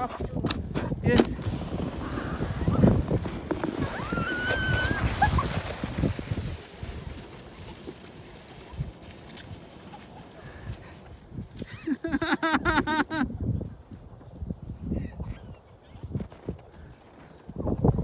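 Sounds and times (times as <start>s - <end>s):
sleds scraping over snow: 0.0s - 13.0s
child squealing: 4.0s - 5.2s.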